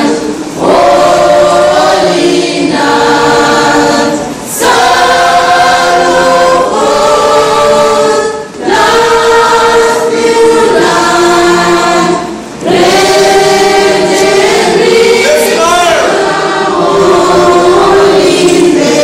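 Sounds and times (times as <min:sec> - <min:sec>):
children's choir singing: 0:00.0 - 0:19.0.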